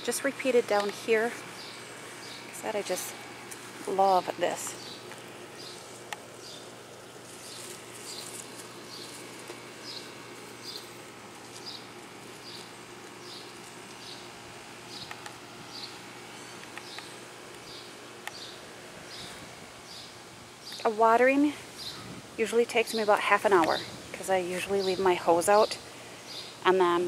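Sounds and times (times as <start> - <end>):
faint background hum: 0.0 - 27.0.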